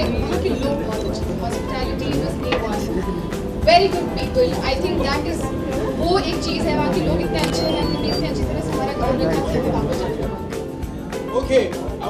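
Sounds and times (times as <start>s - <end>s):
woman speaking into a microphone: 0.0s - 10.3s
noisy hall: 0.0s - 12.0s
short sharp clicks: 7.4s - 8.0s.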